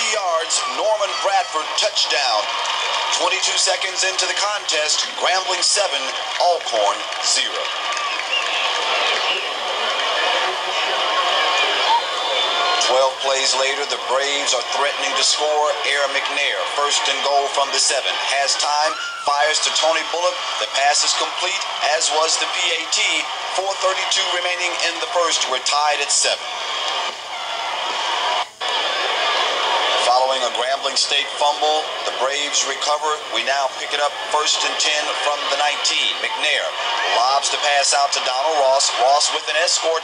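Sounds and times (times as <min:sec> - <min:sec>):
stadium crowd talking and shouting: 0:00.0 - 0:40.0.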